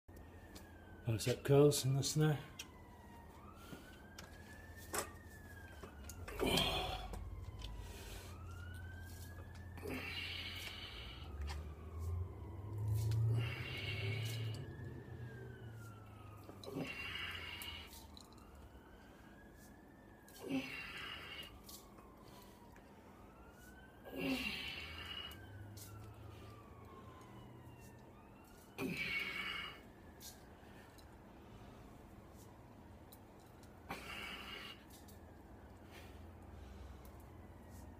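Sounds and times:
siren wailing: 0.1 - 37.9
man exhaling breathily: 6.3 - 8.5, 9.8 - 12.3, 13.0 - 14.8, 16.5 - 18.1, 20.3 - 22.7, 24.0 - 25.4, 28.8 - 29.9, 33.9 - 35.0.

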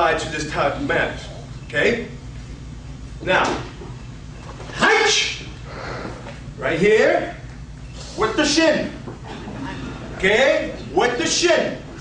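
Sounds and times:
man shouting: 4.8 - 5.5.

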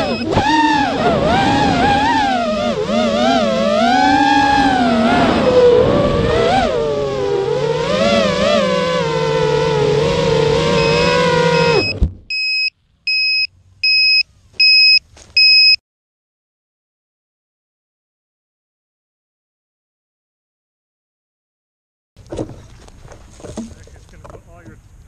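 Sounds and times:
short high electronic beeps: 0.0 - 0.3, 10.8 - 15.8
drone motors whining: 0.0 - 15.7.

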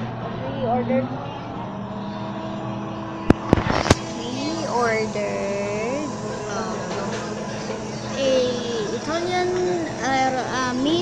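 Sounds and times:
busy eatery din: 0.0 - 11.0.

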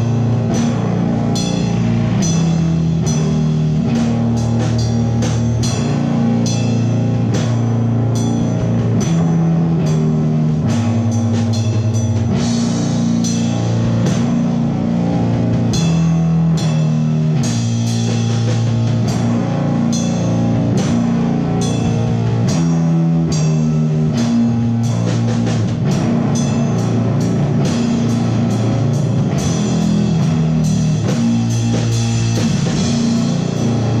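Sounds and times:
cymbal crashes: 0.0 - 34.0
drum kit: 0.0 - 34.0
electric bass: 0.0 - 34.0
electric guitar: 0.0 - 34.0
live rock band playing: 0.0 - 34.0.

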